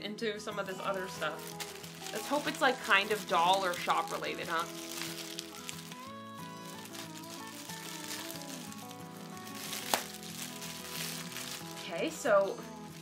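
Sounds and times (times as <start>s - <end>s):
soft background music: 0.0s - 13.0s
plastic packaging crinkling: 0.8s - 13.0s.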